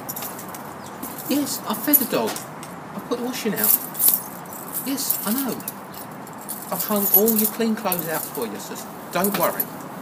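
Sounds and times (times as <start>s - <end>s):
keys jangling: 0.0s - 2.5s, 3.6s - 8.6s, 9.2s - 9.7s
man talking: 1.3s - 2.4s, 3.0s - 3.8s, 4.8s - 5.8s, 6.7s - 9.8s.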